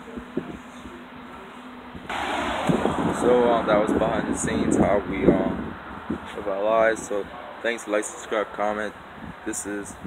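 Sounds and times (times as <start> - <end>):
loud rush of noise: 2.1 - 7.6
man speaking: 3.1 - 5.6.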